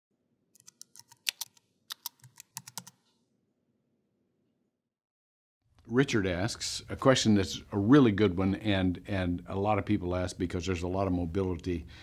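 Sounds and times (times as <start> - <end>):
keyboard typing clicks: 0.6 - 3.0.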